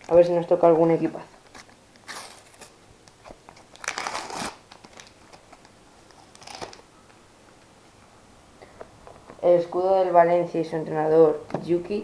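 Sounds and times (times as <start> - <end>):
wrapper crinkling: 1.4 - 6.9.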